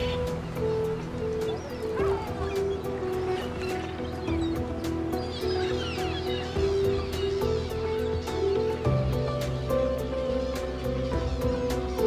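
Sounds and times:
background music with held notes: 0.0s - 12.0s
gulls calling: 0.0s - 12.0s.

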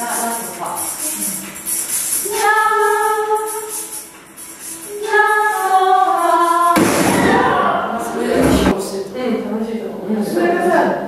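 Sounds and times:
room noise with voices: 0.0s - 11.0s
women singing together: 4.9s - 8.8s.

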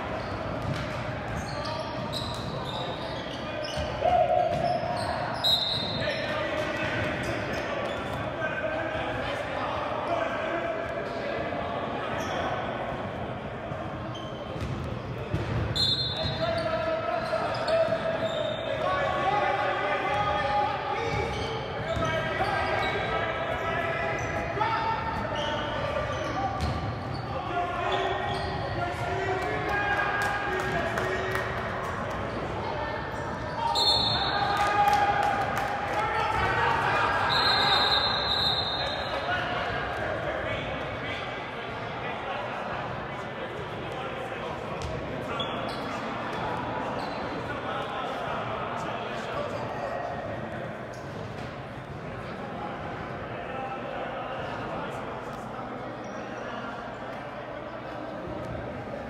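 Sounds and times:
loud shout: 4.0s - 5.1s, 33.5s - 39.6s.

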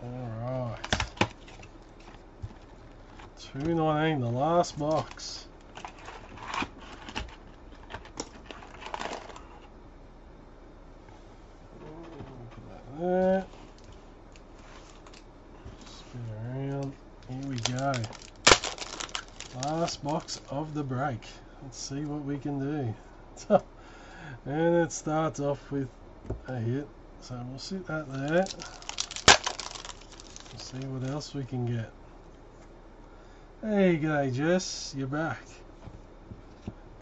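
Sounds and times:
foil wrapper crackling and tearing: 8.2s - 9.5s, 17.2s - 20.5s, 28.1s - 31.2s.

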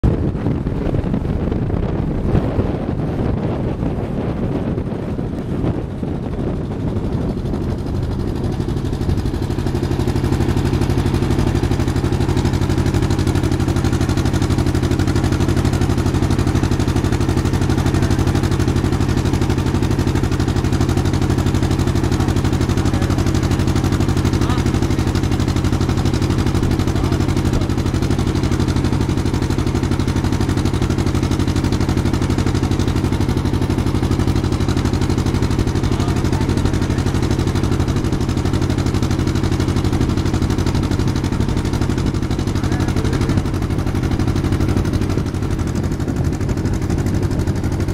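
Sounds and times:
water noise: 0.0s - 47.9s
wind: 0.0s - 47.9s
motor boat engine droning: 0.1s - 47.9s.

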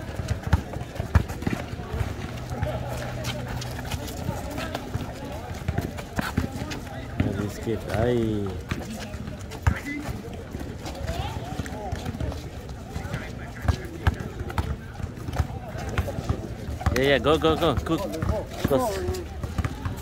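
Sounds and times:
basketball bouncing on asphalt: 0.0s - 2.9s, 4.2s - 20.0s
sneaker footsteps: 0.0s - 20.0s.

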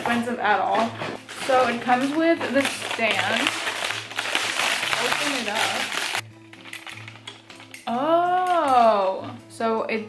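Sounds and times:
woman speaking: 0.0s - 3.6s, 4.8s - 5.9s, 7.9s - 10.0s
plastic packaging rustling: 0.0s - 8.9s.

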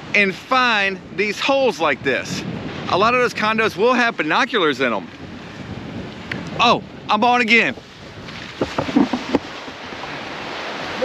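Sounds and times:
surf: 0.0s - 11.0s
wind: 0.0s - 11.0s
camera handling knocks: 8.6s - 9.5s.

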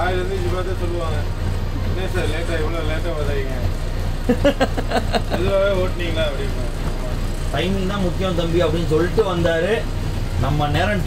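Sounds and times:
diesel engine droning: 0.0s - 11.0s
people talking: 0.0s - 11.0s.

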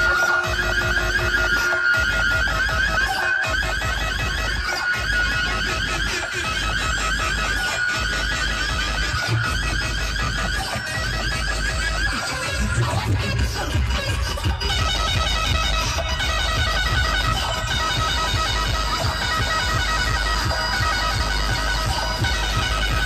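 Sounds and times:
loud remix music with deep bass: 0.0s - 23.0s.

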